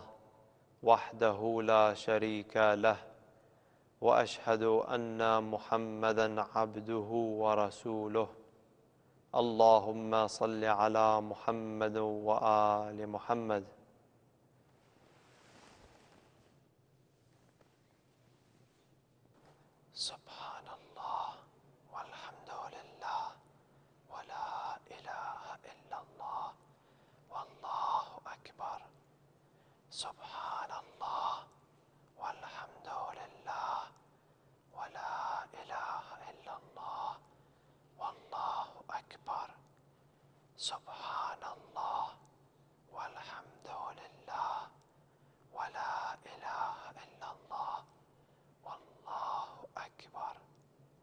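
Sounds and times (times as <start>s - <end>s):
man whispering: 0.0s - 3.4s, 4.0s - 8.5s, 9.3s - 14.1s, 19.4s - 50.6s.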